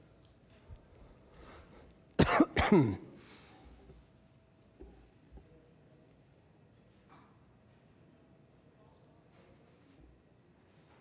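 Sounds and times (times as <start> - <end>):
person coughing: 2.2 - 3.2.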